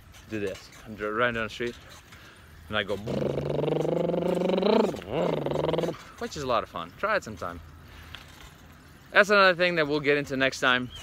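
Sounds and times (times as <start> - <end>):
man's drawn-out vocal noise: 3.0 - 6.0.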